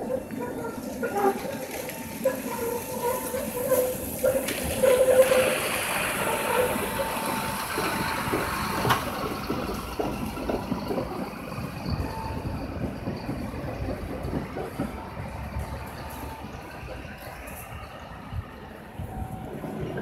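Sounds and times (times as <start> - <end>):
tram wheels squealing on curve: 0.0 - 20.0
diesel truck driving past: 0.2 - 13.3.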